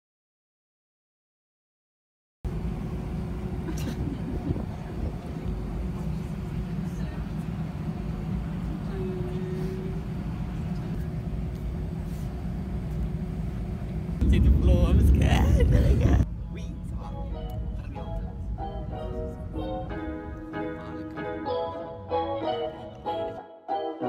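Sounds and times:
airliner cabin rumble: 2.5s - 21.3s.

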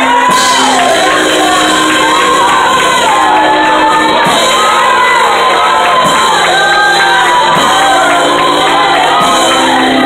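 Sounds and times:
congregation singing and shouting: 0.0s - 10.0s.

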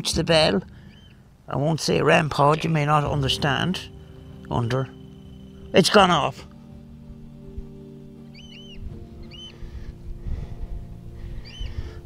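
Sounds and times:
steady low drone: 0.0s - 12.0s
faint high alarm beeps: 2.5s - 9.6s.

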